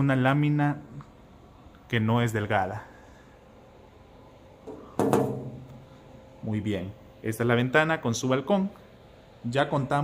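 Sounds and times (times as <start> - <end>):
hand knocking on metal shutter: 4.7 - 5.6.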